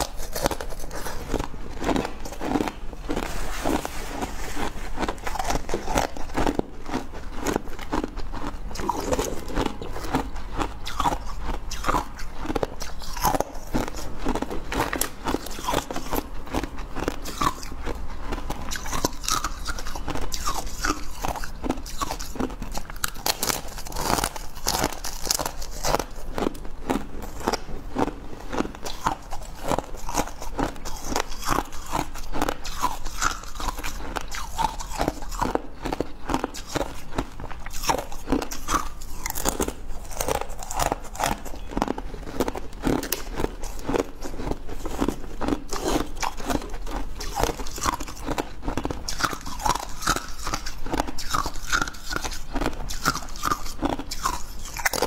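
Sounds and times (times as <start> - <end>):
frost being chewed: 0.0 - 55.0.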